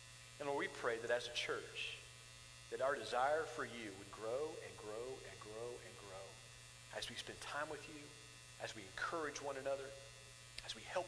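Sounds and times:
steady low hum: 0.0s - 11.0s
man speaking: 0.4s - 2.1s, 2.7s - 11.0s.

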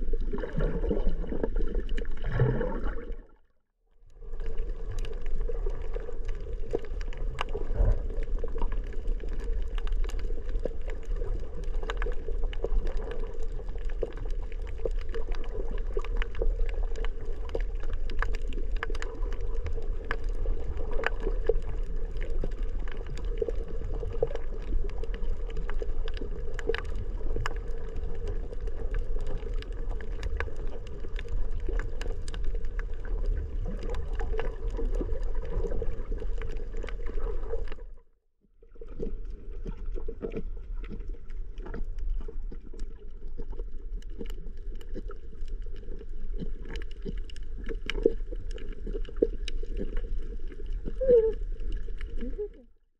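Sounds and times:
underwater rumble of moving water: 0.0s - 52.9s.

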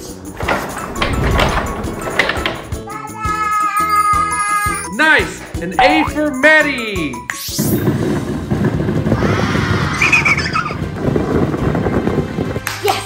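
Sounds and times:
music: 0.0s - 9.2s, 10.1s - 13.0s.

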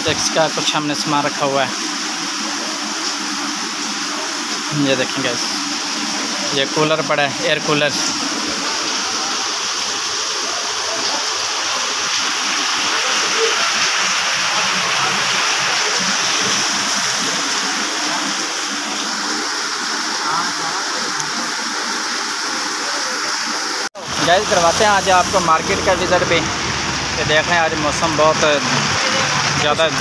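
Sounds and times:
heavy rain pouring: 0.0s - 30.0s.

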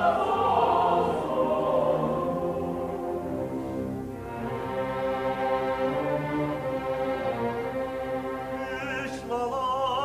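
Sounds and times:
orchestra strings holding chords: 0.0s - 10.0s.

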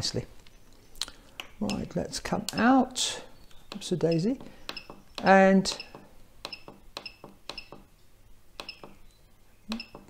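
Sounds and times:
button clicks: 3.7s - 7.8s, 8.6s - 9.0s, 9.7s - 10.0s.

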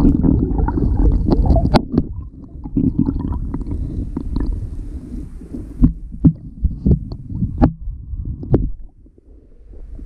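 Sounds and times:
muffled underwater water noise: 0.0s - 10.0s.

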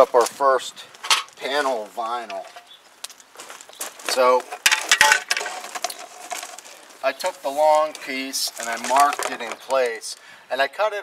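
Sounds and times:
plastic siding panel clattering: 4.4s - 6.7s, 8.6s - 10.0s.

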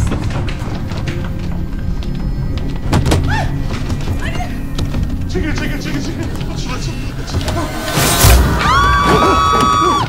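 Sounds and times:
women screaming: 8.5s - 10.0s.

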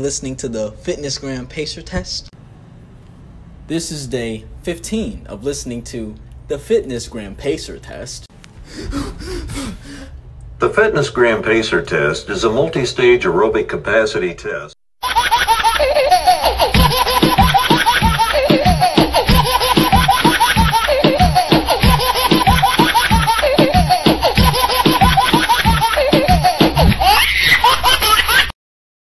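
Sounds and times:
high-pitched laughter: 15.0s - 28.5s
music: 16.5s - 27.1s
heavy bass beat: 16.8s - 27.0s.

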